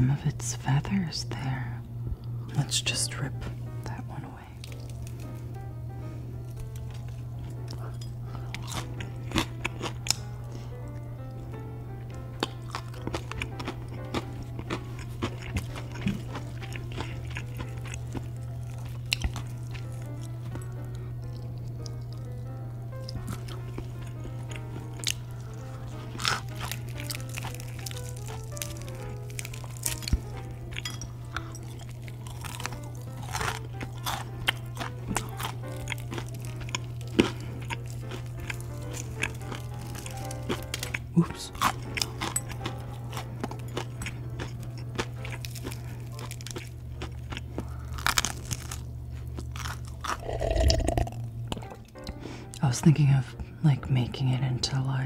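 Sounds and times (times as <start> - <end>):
soft background music: 0.0 - 55.0
crunchy food being chewed: 4.6 - 5.6, 6.4 - 52.2.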